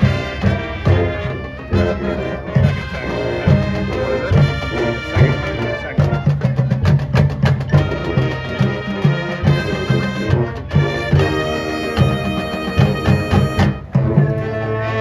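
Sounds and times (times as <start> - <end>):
mallet percussion: 0.0 - 14.6
brass melody: 0.0 - 15.0.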